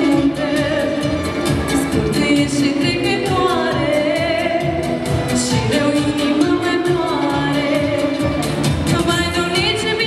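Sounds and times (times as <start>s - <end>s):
instrumental accompaniment with beat: 0.0s - 10.0s
woman singing with vibrato: 0.0s - 10.0s.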